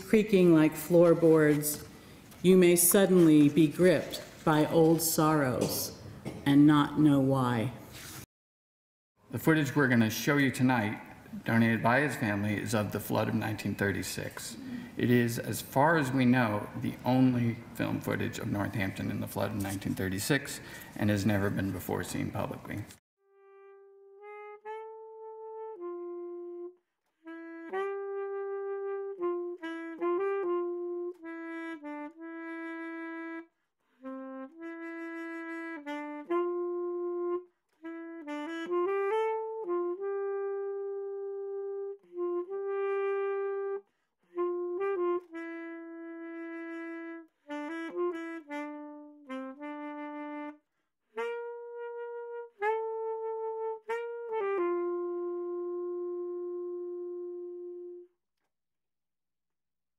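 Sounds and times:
wind instrument melody: 23.2s - 58.2s.

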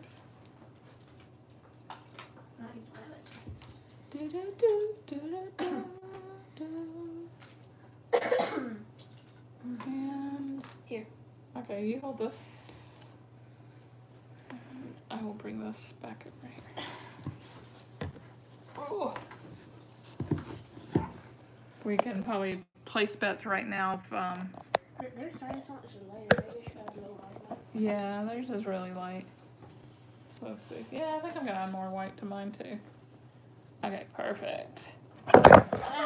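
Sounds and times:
person coughing: 8.1s - 8.9s.

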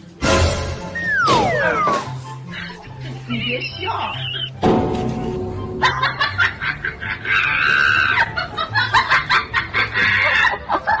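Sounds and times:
rapid high-pitched laughter: 2.5s - 4.6s, 5.8s - 11.0s.

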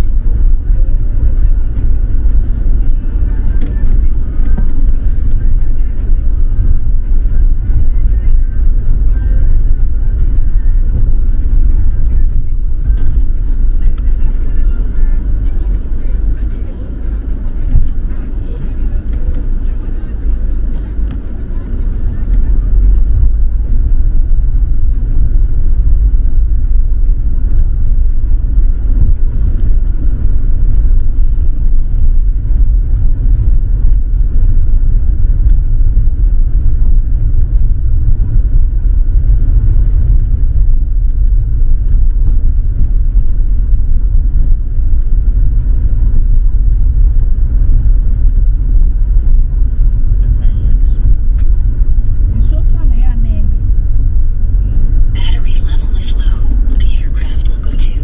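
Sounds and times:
car engine running: 0.0s - 58.0s
tyre and road noise: 0.0s - 58.0s.

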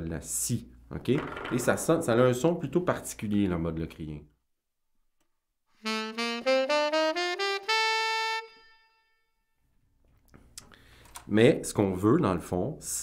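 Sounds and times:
tenor saxophone playing a scale: 5.8s - 9.3s.

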